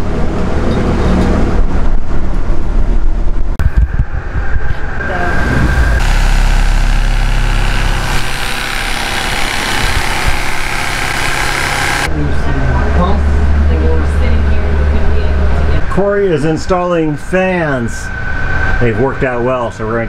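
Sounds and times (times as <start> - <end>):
loud motor hum: 5.7 - 12.1.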